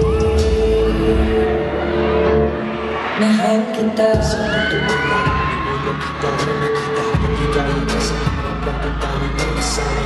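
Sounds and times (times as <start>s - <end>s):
pop backing music over loudspeakers: 0.0s - 10.0s.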